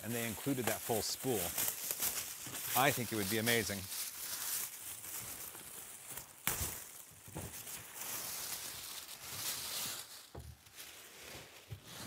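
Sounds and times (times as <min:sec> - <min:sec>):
plastic bag rustling and crinkling: 0:00.0 - 0:12.0.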